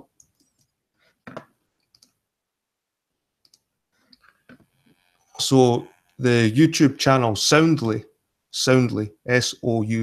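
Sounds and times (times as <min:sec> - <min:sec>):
computer mouse and keyboard clicks: 0:00.0 - 0:02.2, 0:03.4 - 0:04.7.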